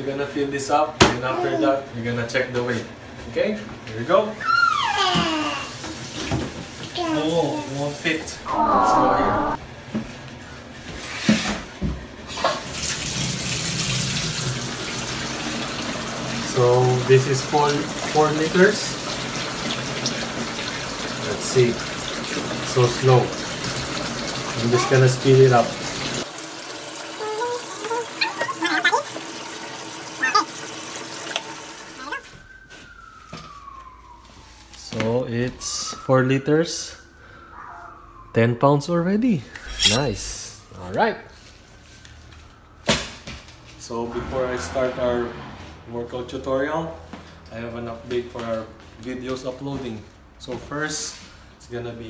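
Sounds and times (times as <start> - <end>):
water running from faucet into jug: 5.3 - 8.2, 12.4 - 32.1
tone gliding downward: 8.4 - 9.6
short high-pitched chirps: 39.6 - 40.4.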